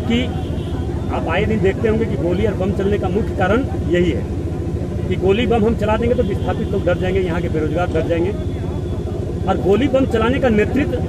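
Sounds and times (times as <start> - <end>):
low background rumble: 0.0 - 11.0
man speaking: 1.1 - 4.3, 5.1 - 8.5, 9.4 - 11.0.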